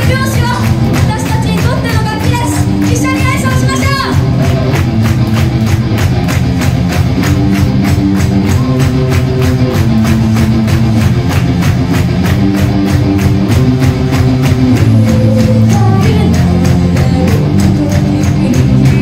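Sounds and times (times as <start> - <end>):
bass guitar: 0.0 - 19.0
electric guitar: 0.0 - 19.0
fast drum beat: 0.0 - 19.0.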